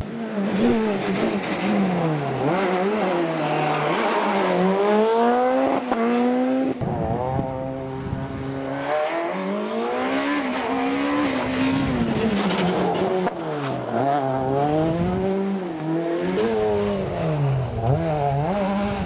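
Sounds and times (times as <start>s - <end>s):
rally car engine revving: 0.0s - 19.0s.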